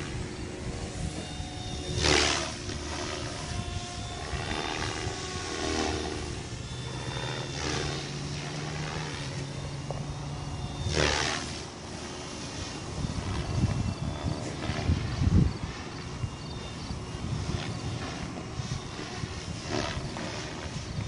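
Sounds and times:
rc helicopter rotor whine: 0:00.0 - 0:21.0.

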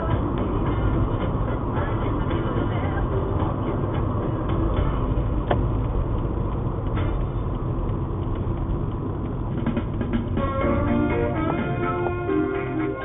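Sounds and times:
car engine rumble: 0:00.0 - 0:13.0
tyre road noise: 0:00.0 - 0:13.0.

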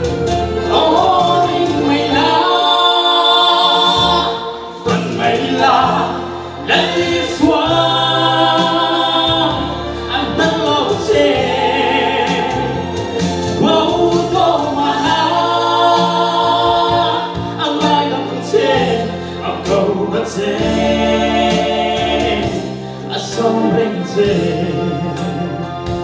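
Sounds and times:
musical accompaniment: 0:00.0 - 0:26.0
man singing into a microphone: 0:23.1 - 0:26.0.

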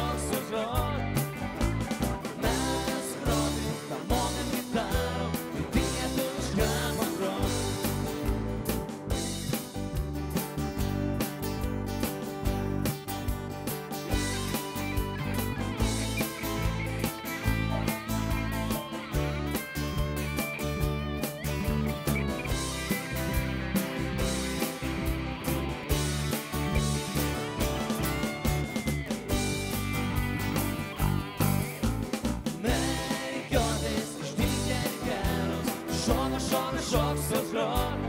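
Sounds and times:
electric guitar lead: 0:00.0 - 0:38.0
electronic drum beat: 0:00.8 - 0:38.0.

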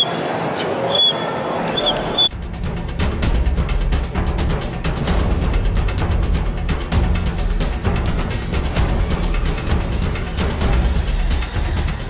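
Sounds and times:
crowd chatter in hall: 0:00.0 - 0:02.3
music with deep driving beat: 0:02.3 - 0:12.0.

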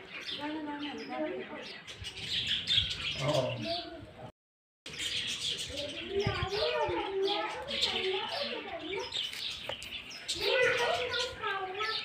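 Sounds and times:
small birds chirping: 0:00.0 - 0:04.3, 0:04.9 - 0:12.0.

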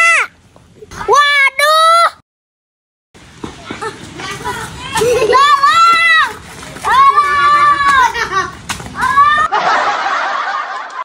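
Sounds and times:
child laughing: 0:03.7 - 0:06.2, 0:07.2 - 0:10.1.

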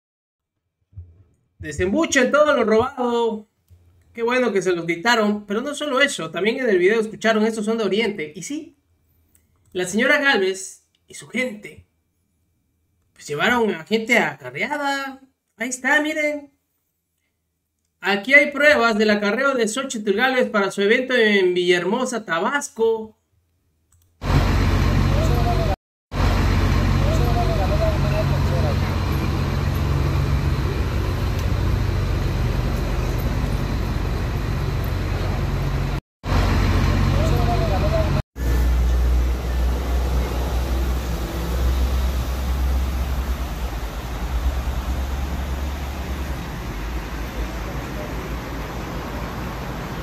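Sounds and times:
bus engines idling: 0:24.2 - 0:50.0.

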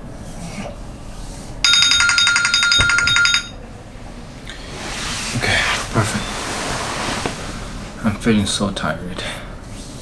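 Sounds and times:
electronic timer alarm chime: 0:01.6 - 0:03.6.

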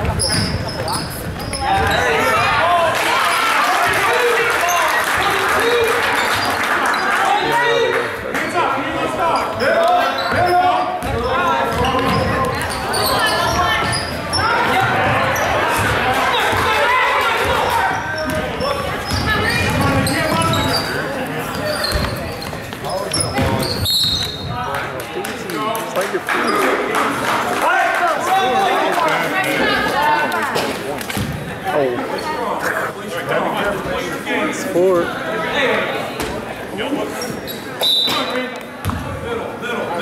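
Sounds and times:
overlapping echoing voices: 0:00.0 - 0:37.8.

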